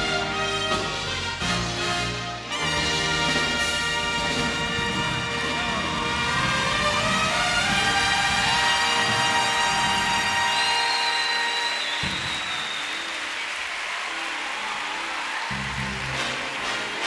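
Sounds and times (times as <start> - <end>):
big band brass and reeds: 0.0 - 14.2, 15.2 - 17.0
audience applause: 3.4 - 17.0.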